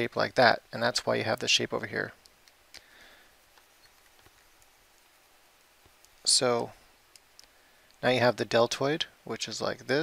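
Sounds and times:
faint ticks: 7.1s - 8.0s.

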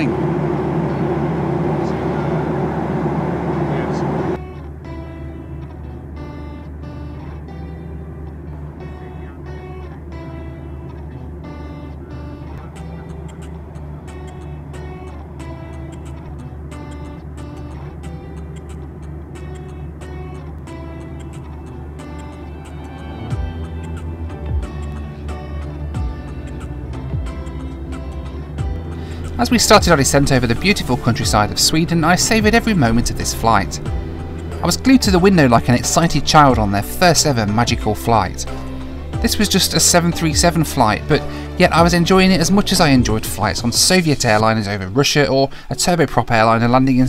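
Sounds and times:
low hum: 0.0s - 44.9s
airplane cabin rumble: 0.0s - 45.8s
plucked notes music: 0.0s - 47.0s.

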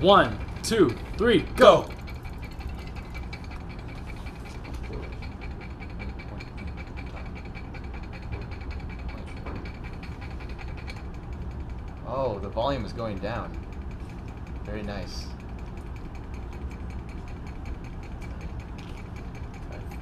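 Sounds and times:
magnetic stirrer humming and ticking: 0.0s - 20.0s.

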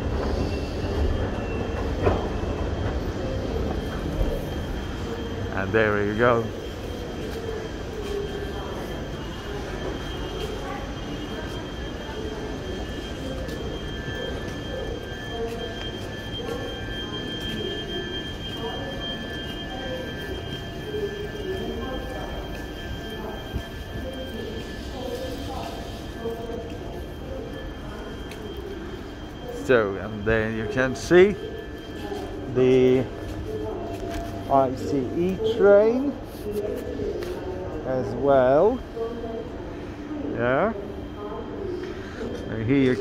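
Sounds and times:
train rumbling: 0.0s - 35.6s
train high whine: 0.0s - 43.0s.

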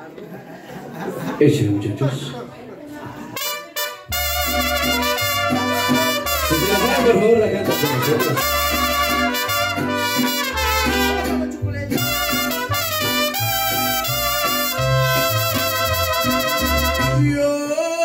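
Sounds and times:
trumpets playing melody: 3.4s - 17.4s.

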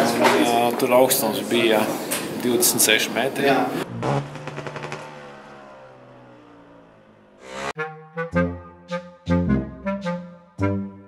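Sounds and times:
motocross bike engine revving: 3.7s - 7.8s
brass music: 7.5s - 11.0s.

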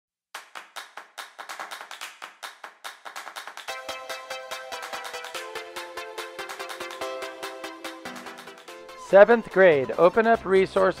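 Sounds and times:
hand claps: 0.3s - 8.7s.

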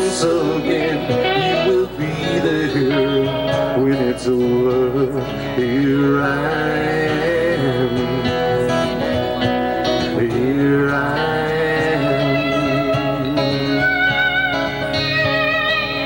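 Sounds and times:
electric guitar bending melody: 0.0s - 16.0s
live band playing: 0.0s - 16.0s.

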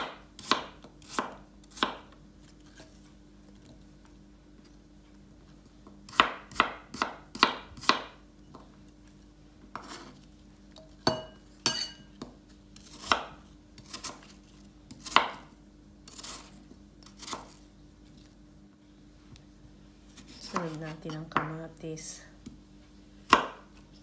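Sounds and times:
knife chopping on wooden board: 0.0s - 2.2s, 6.1s - 8.2s, 9.7s - 10.2s, 11.0s - 14.3s, 14.9s - 15.5s, 23.3s - 23.8s.

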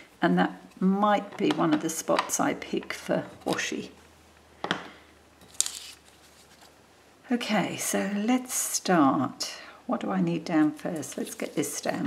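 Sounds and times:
crisp paper rustle: 5.5s - 6.8s.

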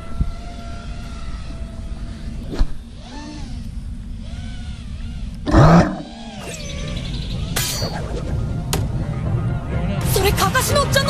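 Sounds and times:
quadcopter motors whining: 0.0s - 8.1s.

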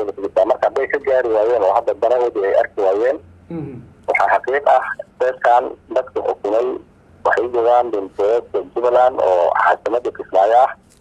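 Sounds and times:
man talking: 0.0s - 10.8s.

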